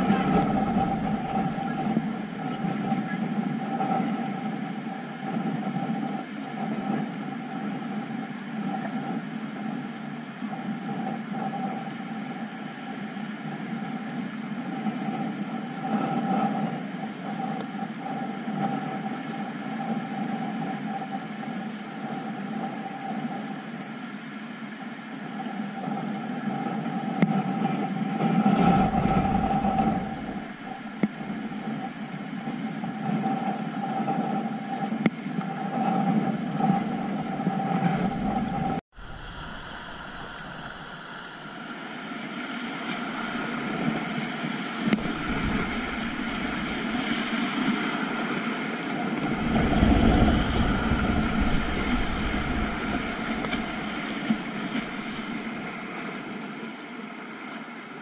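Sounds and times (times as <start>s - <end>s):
river rapids rushing: 44.9s - 56.0s.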